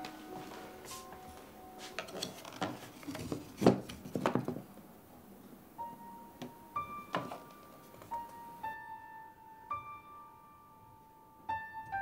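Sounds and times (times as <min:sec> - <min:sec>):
soft piano notes: 0:00.0 - 0:12.0.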